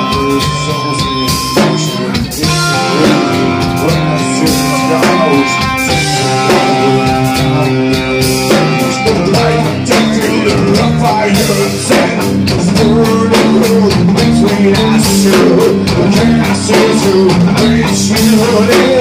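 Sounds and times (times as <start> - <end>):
electric guitar lead line: 0.0 - 19.0
live rock band playing: 0.0 - 19.0.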